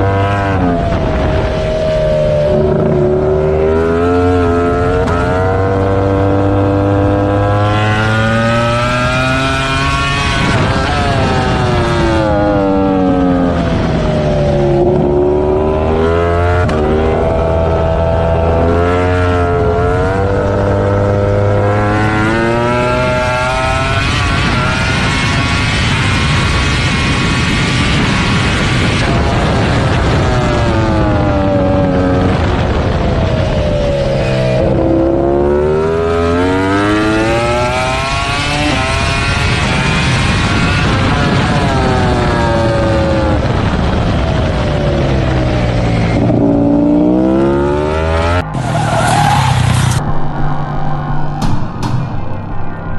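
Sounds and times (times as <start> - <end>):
racing motorcycle engine upshifting: 0.0 - 52.9.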